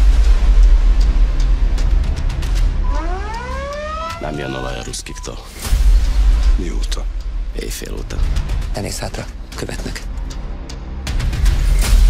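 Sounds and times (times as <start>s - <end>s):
deep bass rumble: 0.0s - 8.7s
rising siren-like wail: 2.7s - 5.3s.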